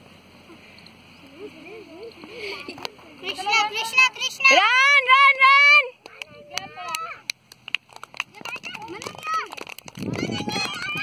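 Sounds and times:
child shouting: 3.3s - 7.2s, 10.1s - 11.0s.

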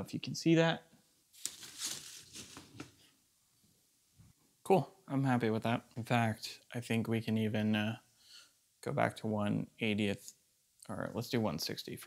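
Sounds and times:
fabric rustling and crinkling: 1.3s - 3.1s.

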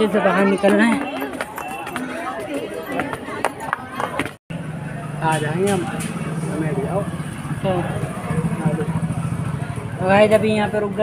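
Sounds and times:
voices: 0.0s - 11.0s
vehicle engine running: 4.5s - 11.0s.

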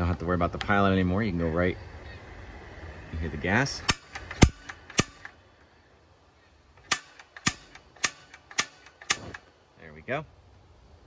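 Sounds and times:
faint gas hiss: 1.3s - 11.0s.

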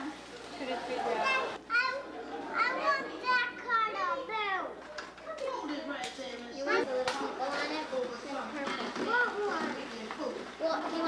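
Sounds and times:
young children talking: 1.1s - 5.9s, 6.5s - 7.8s.

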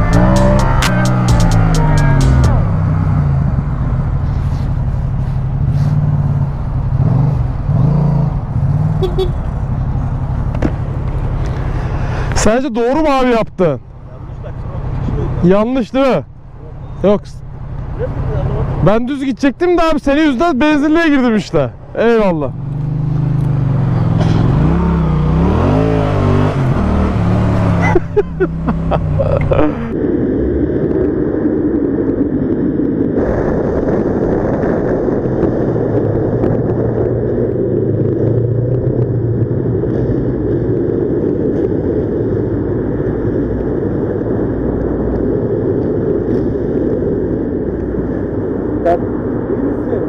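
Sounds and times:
motorcycle engine running: 0.0s - 12.4s, 21.7s - 30.0s
road noise: 0.0s - 50.0s.

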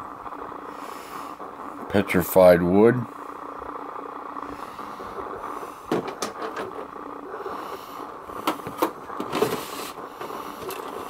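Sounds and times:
room hum with faint tones: 0.0s - 11.0s.

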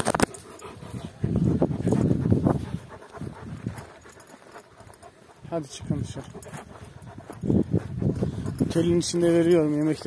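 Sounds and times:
dog breathing roughly: 0.2s - 8.8s.

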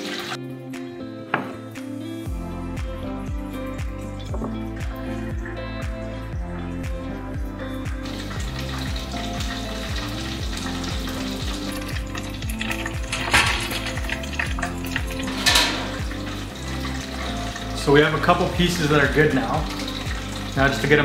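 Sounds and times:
fish deep-frying in hot oil: 0.0s - 0.4s, 7.8s - 21.0s
background music with steady beat: 0.0s - 21.0s.

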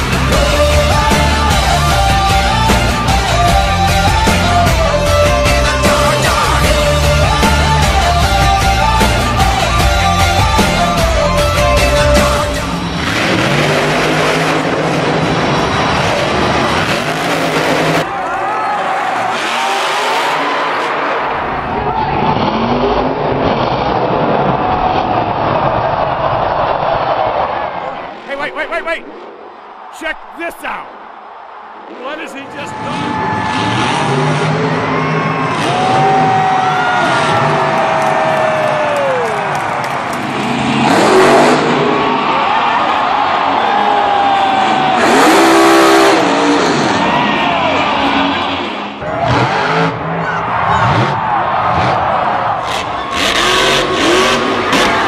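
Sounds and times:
monster truck engines revving: 0.0s - 30.0s, 30.9s - 55.0s
dense crowd noise: 0.0s - 55.0s.

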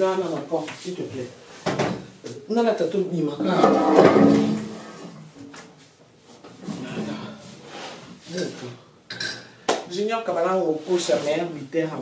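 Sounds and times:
kitchenware clattering: 3.4s - 5.1s, 9.1s - 9.5s.

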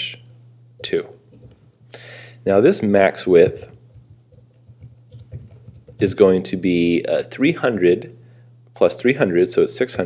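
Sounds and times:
keyboard typing: 0.8s - 1.6s, 3.4s - 6.2s.

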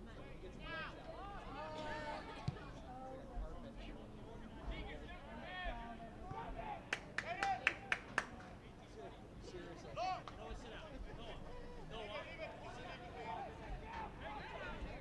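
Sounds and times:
sharp hand claps: 6.9s - 8.5s.

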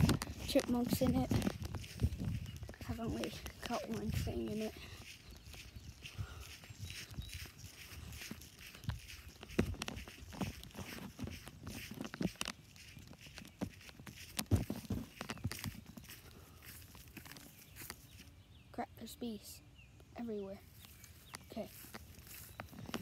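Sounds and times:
footsteps through grass: 0.0s - 19.3s, 20.2s - 23.0s.

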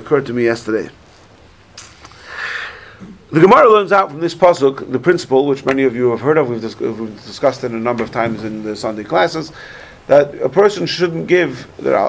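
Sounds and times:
person sniffing: 2.1s - 3.2s.

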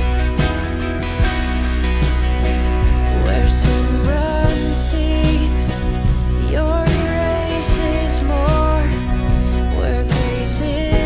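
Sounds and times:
live worship band playing: 0.0s - 11.0s.

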